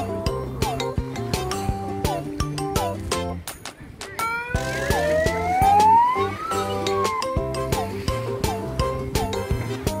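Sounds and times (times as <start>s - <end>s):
background music with a beat: 0.0s - 10.0s
megaphone siren wailing: 4.2s - 7.3s.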